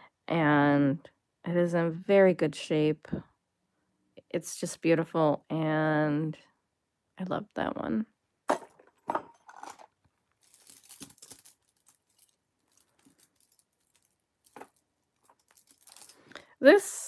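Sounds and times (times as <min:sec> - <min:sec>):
rustling: 0:09.3 - 0:16.4.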